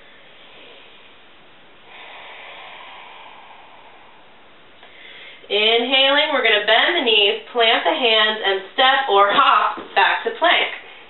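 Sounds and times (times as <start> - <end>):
soft breathy exhale: 0.0 - 5.5
faint room noise hiss: 0.0 - 11.0.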